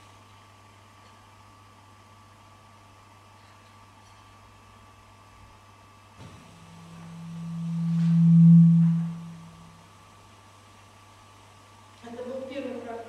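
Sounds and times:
low pure tone: 0:06.5 - 0:09.9.

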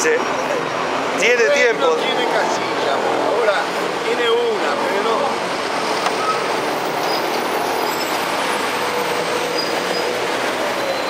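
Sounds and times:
heavy vehicle passing: 0:00.0 - 0:11.0
street traffic noise: 0:00.0 - 0:11.0.

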